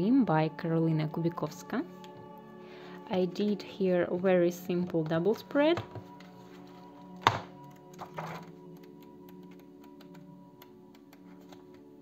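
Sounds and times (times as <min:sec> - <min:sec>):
soft background music: 0:00.0 - 0:12.0
paper pages handled: 0:06.0 - 0:08.6, 0:11.2 - 0:11.9.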